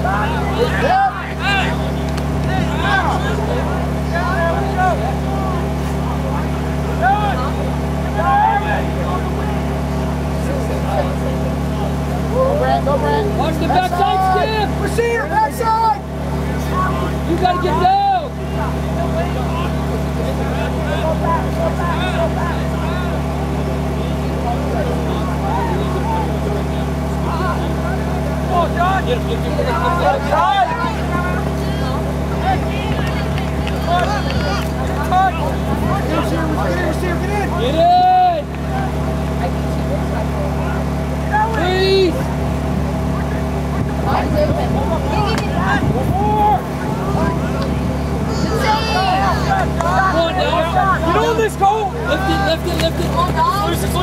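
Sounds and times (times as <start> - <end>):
people shouting: 0.0 - 10.1, 11.7 - 39.1, 41.2 - 42.3, 44.1 - 54.0
low mechanical hum: 0.0 - 54.0.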